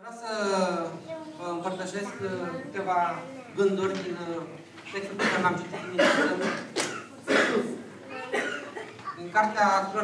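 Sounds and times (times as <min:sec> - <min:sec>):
loud cough: 0:05.2 - 0:09.0.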